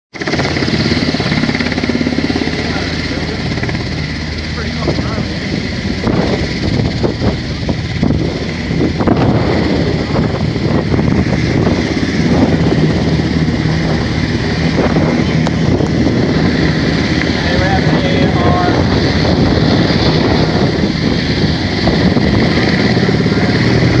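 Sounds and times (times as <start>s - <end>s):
helicopter rotor beating: 0.1s - 24.0s
turbine engine whine: 0.1s - 24.0s.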